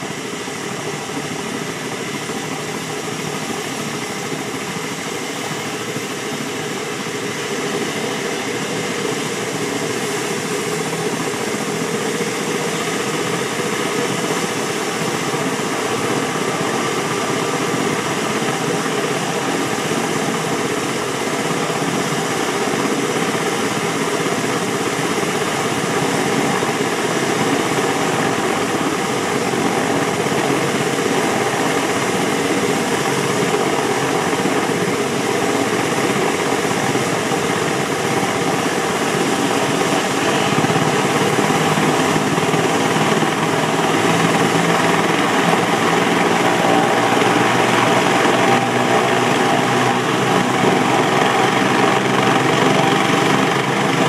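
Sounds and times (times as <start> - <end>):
helicopter rotor turning: 0.0 - 54.0
helicopter turbine whining: 0.0 - 54.0.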